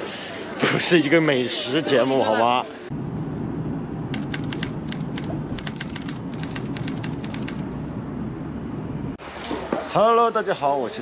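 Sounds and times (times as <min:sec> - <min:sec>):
typewriter key clicks: 0:04.2 - 0:07.6.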